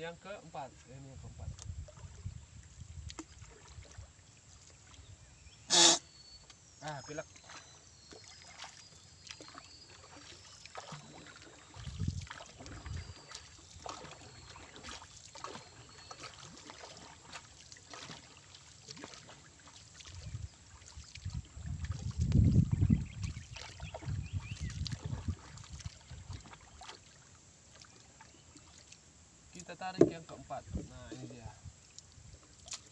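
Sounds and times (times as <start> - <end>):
paddle stroking through water: 7.1 - 29.0, 29.6 - 32.9
paddle knocking on canoe: 29.7 - 31.4.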